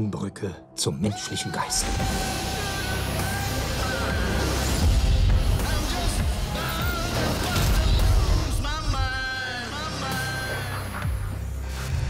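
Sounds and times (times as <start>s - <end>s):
low bass drone: 1.8s - 9.6s.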